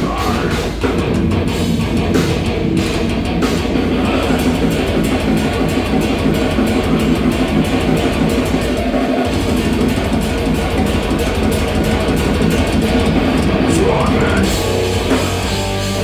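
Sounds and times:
heavy metal band playing live: 0.0 - 16.0.

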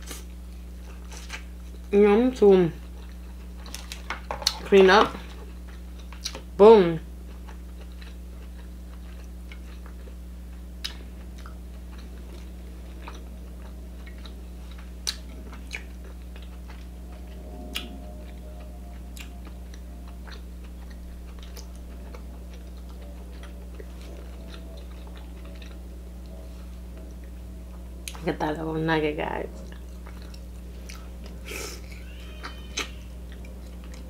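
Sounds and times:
low hum: 0.0 - 34.0
person chewing: 7.2 - 28.2, 29.6 - 34.0.

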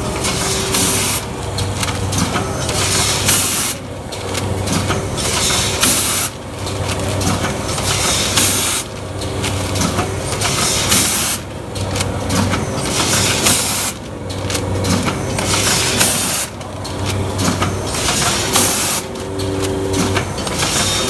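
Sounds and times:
packing machine cycling: 0.0 - 21.0.

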